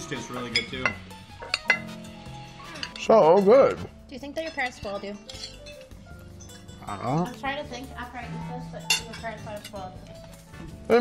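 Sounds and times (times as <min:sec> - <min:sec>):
soft piano music: 0:00.0 - 0:11.0
cutlery clinking against plates: 0:00.2 - 0:02.0, 0:02.7 - 0:03.8, 0:04.4 - 0:07.5, 0:08.8 - 0:10.4.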